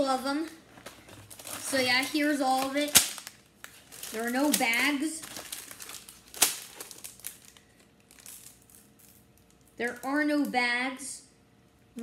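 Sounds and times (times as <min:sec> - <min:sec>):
plastic wrapping crinkling: 0:00.5 - 0:10.1.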